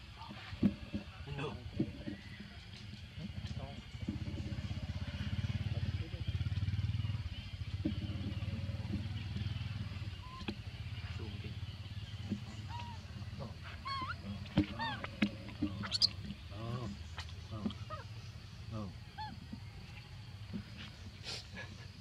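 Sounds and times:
small engine idling: 0:01.3 - 0:22.0
baby monkey squeaking: 0:10.2 - 0:10.5, 0:12.5 - 0:16.2, 0:17.8 - 0:18.0, 0:19.2 - 0:19.4.

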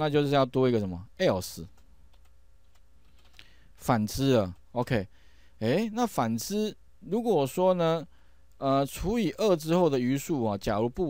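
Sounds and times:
computer keyboard keystrokes: 0:01.7 - 0:03.5.

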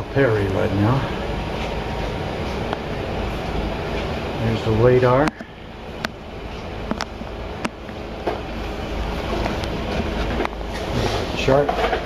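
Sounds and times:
ship machinery humming: 0:00.0 - 0:12.0.

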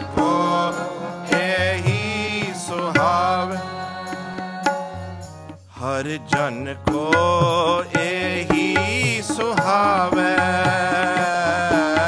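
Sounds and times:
harmonium: 0:00.0 - 0:12.0
man singing devotional song: 0:00.0 - 0:12.0.

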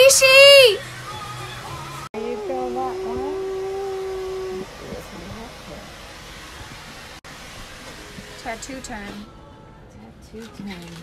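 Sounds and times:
person singing long note: 0:02.2 - 0:05.0
quiet voice sounds: 0:02.2 - 0:05.0.

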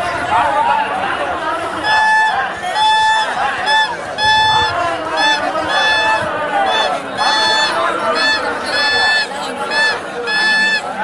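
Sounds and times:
shrill whistle blasts: 0:01.8 - 0:11.0.

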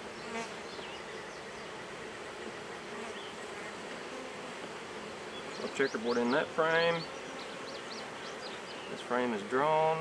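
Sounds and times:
honey bees buzzing: 0:00.0 - 0:10.0.

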